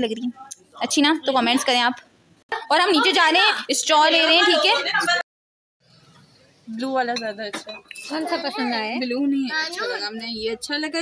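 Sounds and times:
ceramic mugs clinking: 0:07.1 - 0:08.3.

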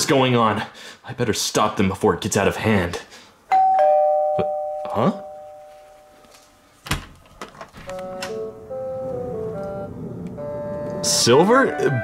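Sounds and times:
slow melody of held notes: 0:08.0 - 0:12.0.

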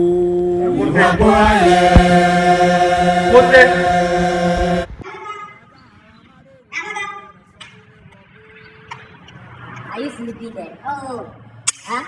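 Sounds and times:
loud voice chanting long note: 0:00.0 - 0:05.0.

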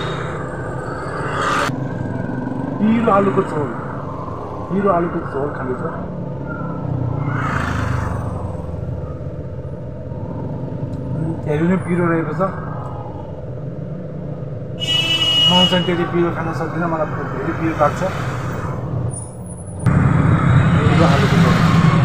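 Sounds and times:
vehicle passing: 0:00.0 - 0:14.6, 0:15.9 - 0:22.0
street traffic rumble: 0:00.0 - 0:22.0.

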